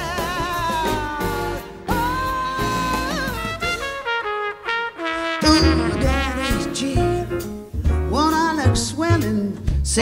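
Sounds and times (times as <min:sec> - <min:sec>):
jazz band with brass lead: 0:00.0 - 0:10.0.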